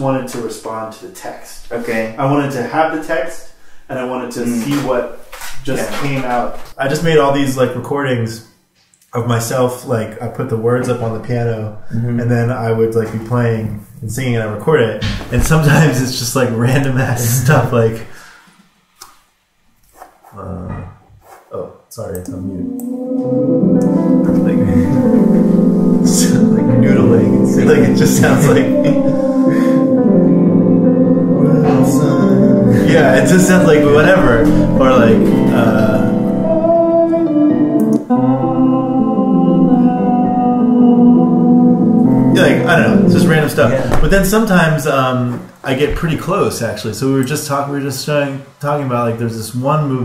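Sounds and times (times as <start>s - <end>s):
piano chords: 15.0s - 18.0s, 22.2s - 44.9s
person singing: 22.1s - 44.2s.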